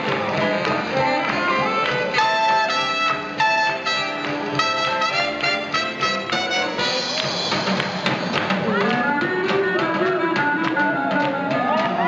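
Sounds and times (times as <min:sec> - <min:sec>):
swing jazz band: 0:00.0 - 0:12.0.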